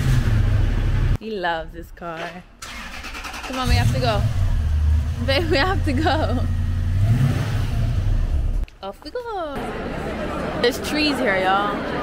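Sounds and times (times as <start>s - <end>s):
car engine running: 3.6s - 8.6s.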